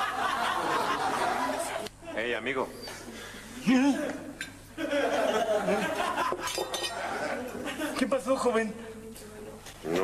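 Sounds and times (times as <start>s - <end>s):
glassware clinking: 6.3s - 7.2s.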